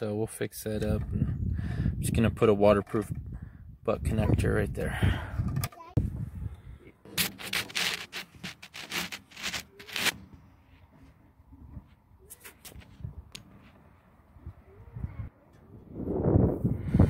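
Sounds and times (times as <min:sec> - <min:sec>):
rubbing and scraping: 0:07.1 - 0:11.1.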